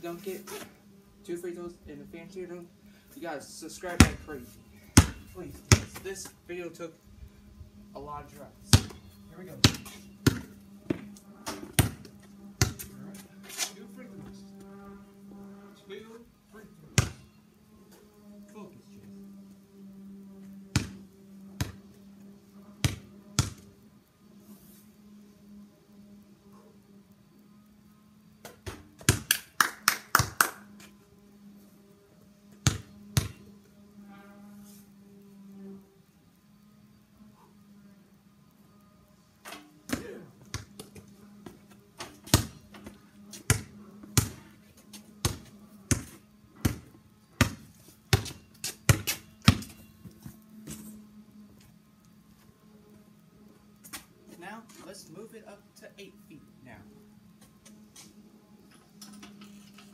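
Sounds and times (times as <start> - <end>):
basketball bouncing on concrete: 4.0 - 4.2, 5.0 - 6.0, 8.6 - 13.2, 17.0 - 17.3, 20.7 - 21.0, 21.6 - 21.8, 22.8 - 23.6, 28.4 - 29.4, 32.5 - 33.5, 39.9 - 49.9.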